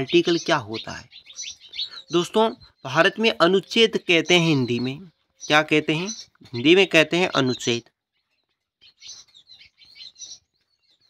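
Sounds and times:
faint high bird chirps: 0.0 - 11.0.

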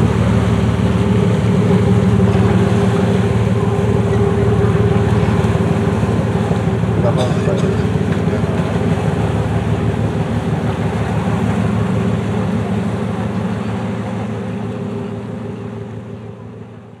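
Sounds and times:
boat engine pulsing: 0.0 - 17.0.

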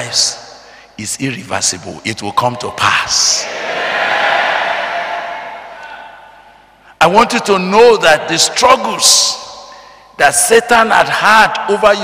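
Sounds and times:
congregation calling out together: 3.4 - 6.6.

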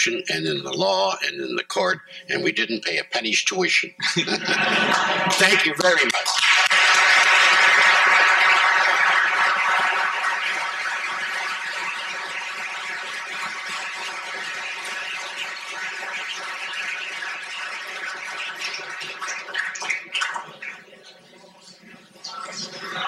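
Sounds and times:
audience applauding: 4.4 - 20.8.

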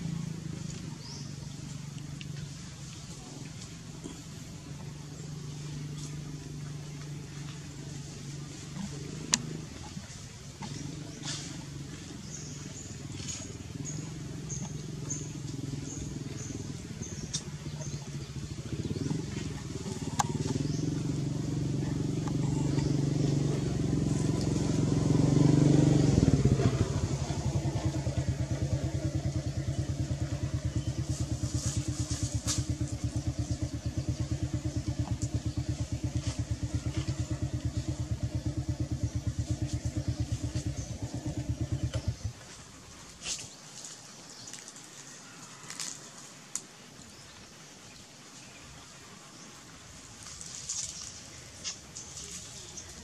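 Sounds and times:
small engine running: 0.0 - 42.6.

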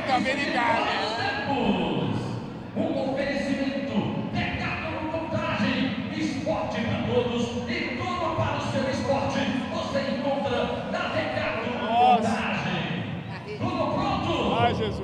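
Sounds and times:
chatter of many voices echoing: 0.0 - 15.0.

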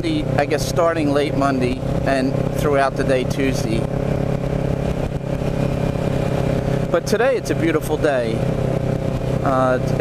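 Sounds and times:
motorcycle engine cruising: 0.0 - 10.0
wind rush over microphone: 3.2 - 7.4, 8.0 - 10.0.

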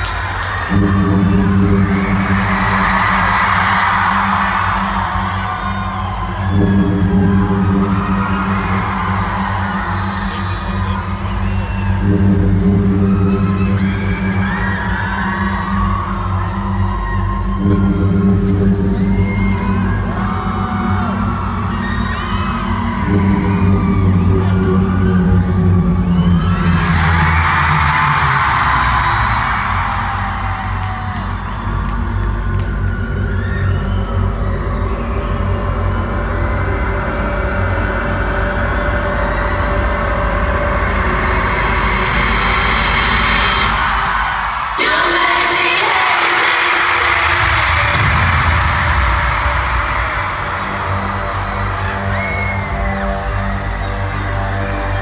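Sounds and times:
audience screaming and cheering: 0.0 - 55.0
bass-heavy intro music: 0.0 - 55.0.

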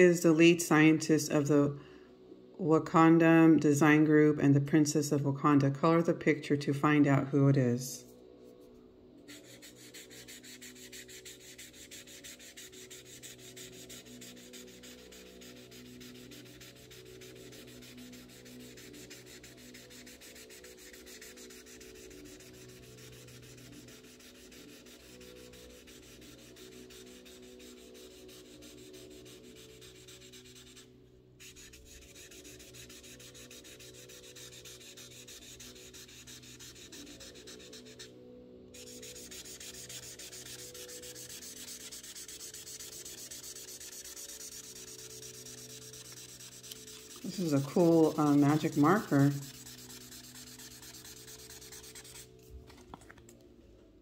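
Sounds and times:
marker scratching on paper: 9.3 - 38.1, 38.8 - 52.3.

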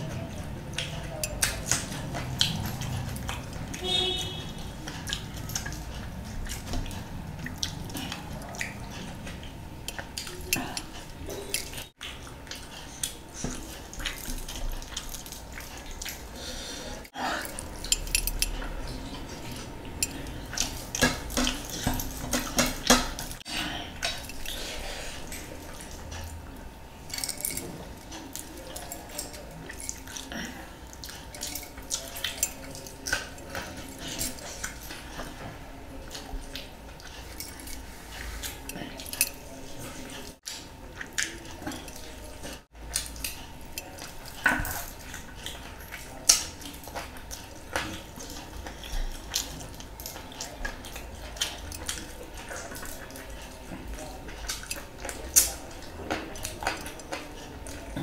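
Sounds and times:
wet chewing and lip smacking: 0.0 - 58.0.

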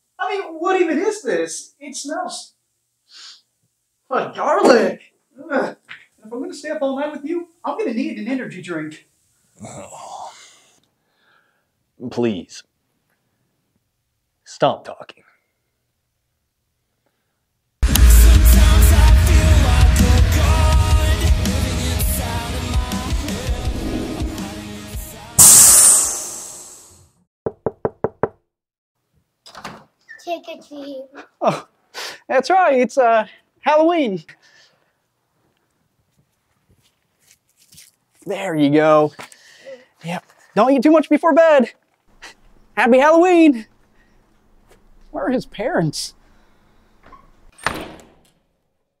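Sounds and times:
loud hissing crash: 25.4 - 27.0
knocking on a door: 27.4 - 28.4
door shutting with a thud: 47.0 - 48.4.

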